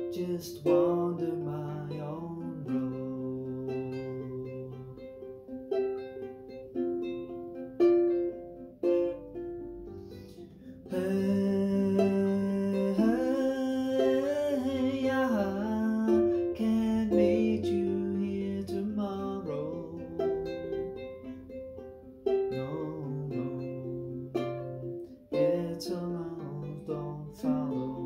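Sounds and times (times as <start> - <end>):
man singing: 0.0 - 5.3, 10.8 - 21.0, 22.3 - 28.0
ukulele fingerpicked: 0.0 - 28.0.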